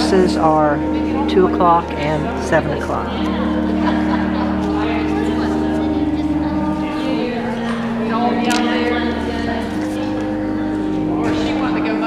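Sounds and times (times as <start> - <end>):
held chord of low tones: 0.0 - 12.0
people talking: 0.0 - 12.0.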